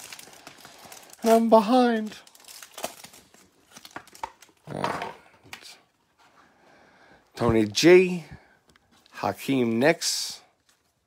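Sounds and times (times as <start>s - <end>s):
foil pack tearing and crinkling: 0.0s - 4.6s.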